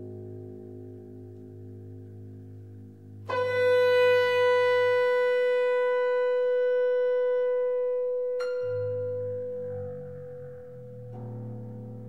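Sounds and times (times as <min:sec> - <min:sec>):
low held note: 0:00.0 - 0:12.0.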